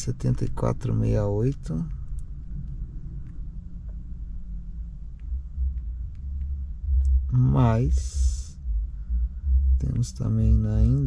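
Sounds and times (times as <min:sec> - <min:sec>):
faint light ticks: 0:01.8 - 0:04.1, 0:04.7 - 0:07.2.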